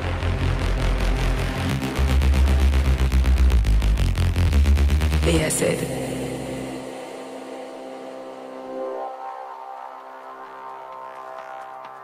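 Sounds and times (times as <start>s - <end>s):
techno kick and bass: 0.0s - 6.4s
sustained synth drone: 0.0s - 12.0s.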